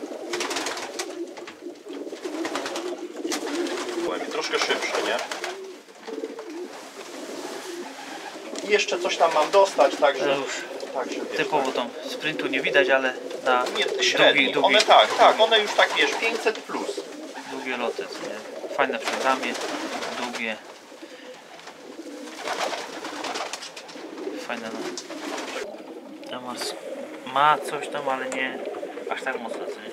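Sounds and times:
pigeons cooing: 0.0s - 29.9s.

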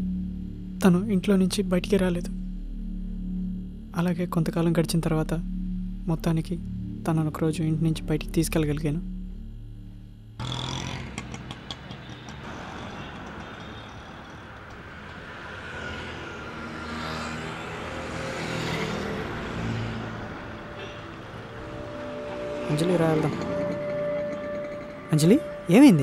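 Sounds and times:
scooters and cars passing: 10.4s - 25.9s.

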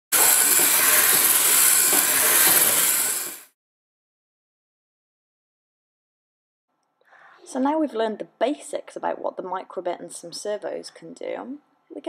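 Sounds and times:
loud steady hiss: 0.1s - 3.5s.

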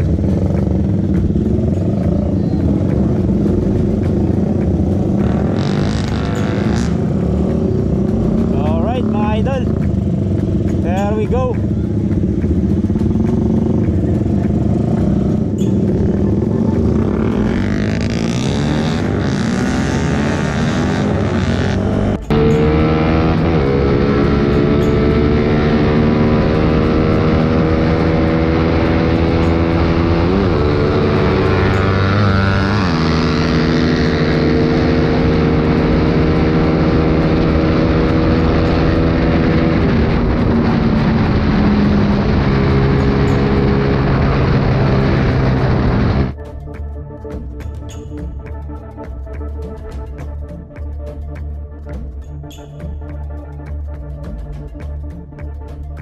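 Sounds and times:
motorcycle engines revving: 0.0s - 46.4s.

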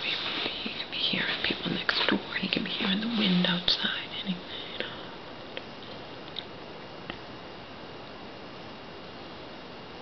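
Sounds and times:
woman whispering: 0.0s - 5.2s.

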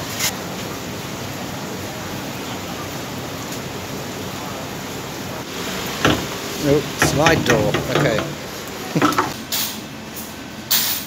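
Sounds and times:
steady background hiss: 0.2s - 9.7s.

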